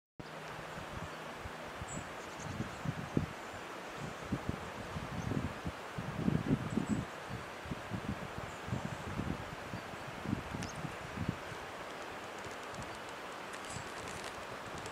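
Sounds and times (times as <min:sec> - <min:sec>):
wind rushing through trees: 0:00.2 - 0:14.9
wind buffeting microphone: 0:00.7 - 0:03.4, 0:04.0 - 0:14.9.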